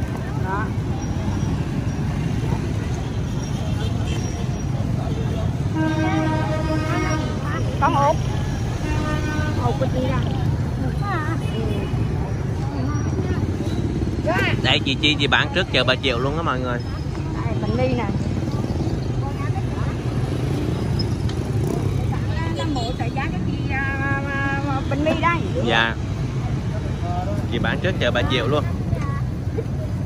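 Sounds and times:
street traffic rumble: 0.0 - 30.0
vehicle horn: 5.6 - 7.9, 8.8 - 10.0.

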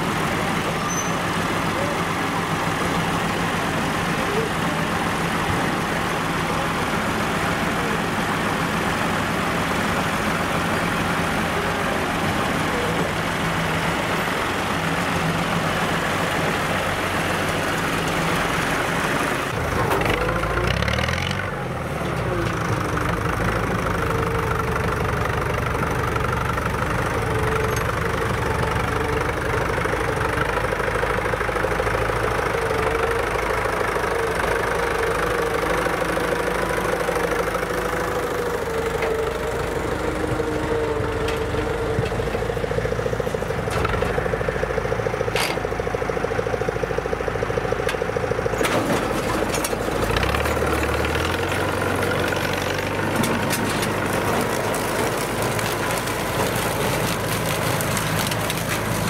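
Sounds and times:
harvester whine: 0.0 - 59.0
tractor engine running: 0.0 - 59.0.

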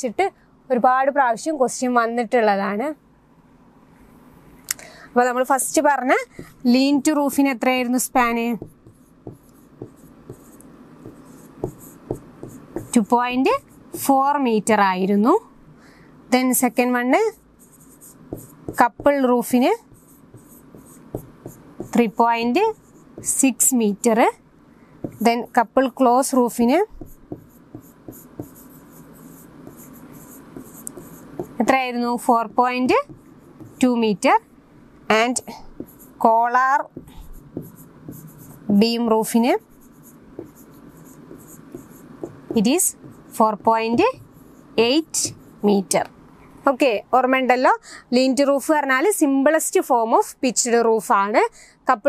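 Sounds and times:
woman speaking: 0.0 - 3.0, 5.2 - 8.7, 12.8 - 15.5, 16.3 - 17.4, 18.7 - 19.9, 21.8 - 24.4, 25.1 - 27.2, 29.2 - 34.4, 35.1 - 37.0, 38.6 - 39.7, 42.5 - 44.2, 44.8 - 52.0
pen scratching on a board: 6.4 - 6.6, 8.2 - 14.2, 17.2 - 23.6, 25.0 - 25.7, 26.3 - 34.4, 35.8 - 45.7.

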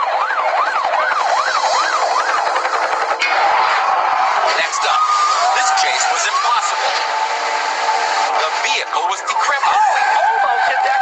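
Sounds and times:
police siren yelping: 0.0 - 11.0
steady rushing noise: 0.5 - 10.2.

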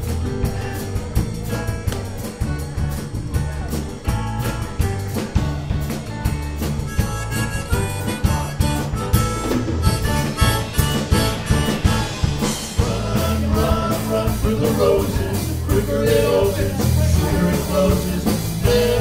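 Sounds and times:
drum kit steady beat: 0.0 - 19.0
electric bass: 0.0 - 19.0
harmonica: 5.5 - 19.0.

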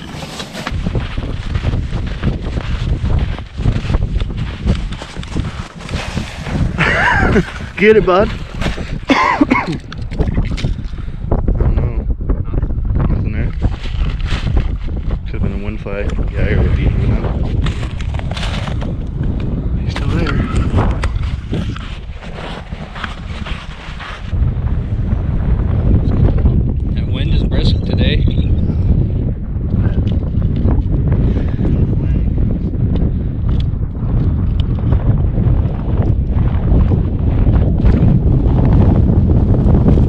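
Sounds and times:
heavy low rumble: 0.0 - 40.0
wind buffeting microphone: 0.0 - 40.0.

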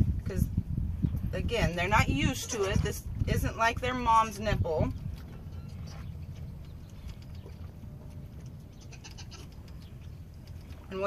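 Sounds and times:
wind rumble on microphone: 0.0 - 11.0
goat kid chewing bottle nipple: 5.0 - 10.9.

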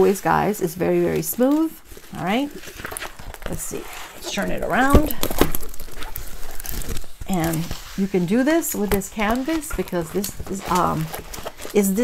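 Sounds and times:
canvas sheet rustling and crackling: 0.0 - 12.0.

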